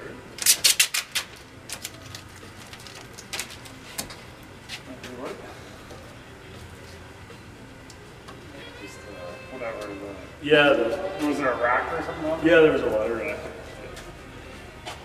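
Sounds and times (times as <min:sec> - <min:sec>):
vinyl wrap being trimmed: 0:00.4 - 0:03.7.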